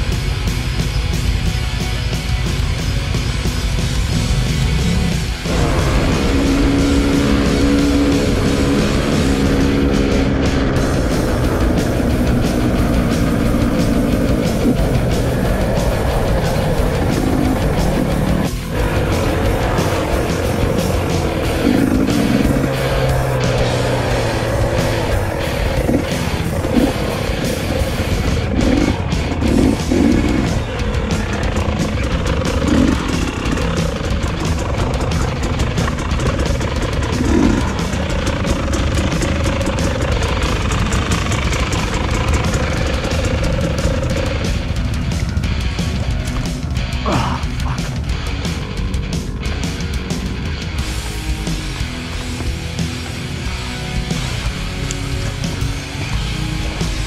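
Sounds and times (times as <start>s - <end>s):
dirt bike engine running: 0.0s - 57.0s
loud rock music: 0.0s - 57.0s.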